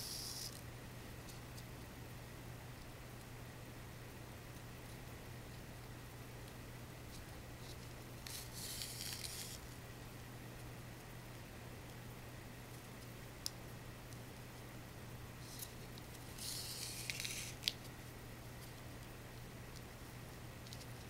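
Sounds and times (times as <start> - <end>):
steady low hum: 0.0 - 21.0
faint handling ticks: 6.4 - 9.7, 15.4 - 18.0.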